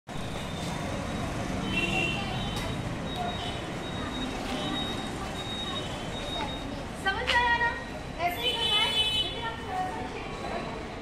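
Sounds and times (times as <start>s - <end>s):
traffic hum: 0.1s - 11.0s.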